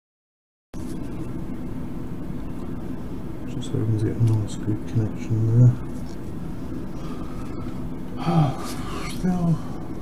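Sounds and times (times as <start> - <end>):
low background hum: 0.8 - 10.0
breathy exhale: 7.0 - 9.8
man murmuring: 8.2 - 9.7.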